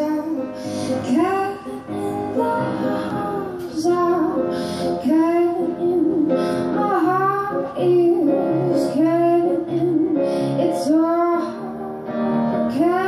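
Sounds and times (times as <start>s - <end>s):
piano accompaniment: 0.0s - 13.0s
woman singing into a microphone: 0.0s - 13.0s.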